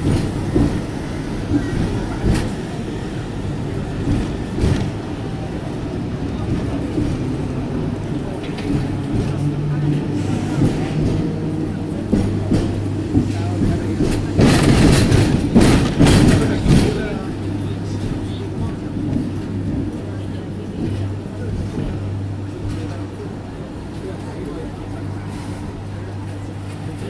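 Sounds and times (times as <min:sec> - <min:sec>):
electric tram humming: 0:00.0 - 0:27.0
tram rattling and clattering: 0:00.0 - 0:27.0.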